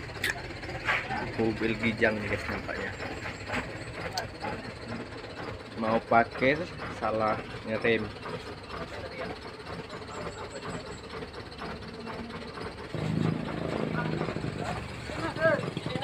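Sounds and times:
vehicle engine idling: 0.0 - 16.0
people's voices: 0.2 - 16.0.

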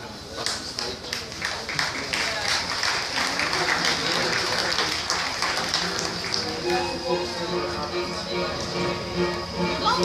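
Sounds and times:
crowd voices: 0.0 - 10.0
audience applauding: 0.4 - 7.0.

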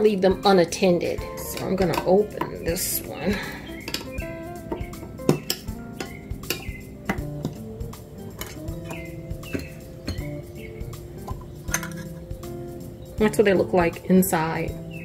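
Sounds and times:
background music: 0.0 - 15.0
lid being pried off: 1.5 - 2.9, 3.8 - 7.6, 8.2 - 10.4, 11.2 - 12.2.

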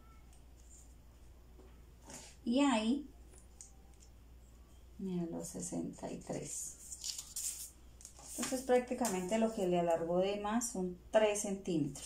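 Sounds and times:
tape measure rustling on paper: 6.2 - 9.7.

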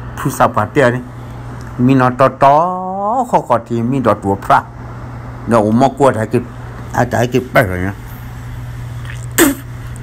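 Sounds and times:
steady low hum: 0.0 - 10.0
person vocal burst: 9.1 - 9.7.

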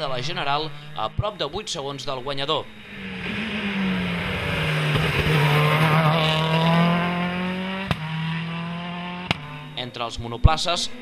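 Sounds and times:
rally car engine high revs: 2.5 - 9.9.

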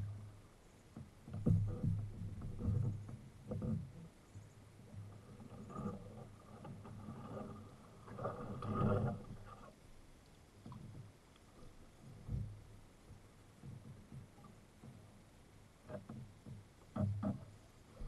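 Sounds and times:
paddle pulling through water: 0.0 - 18.0
water sloshing against hull: 0.0 - 18.0.

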